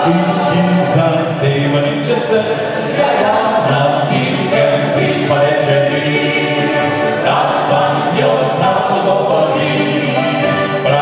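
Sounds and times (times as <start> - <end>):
male vocal group singing in harmony: 0.0 - 11.0.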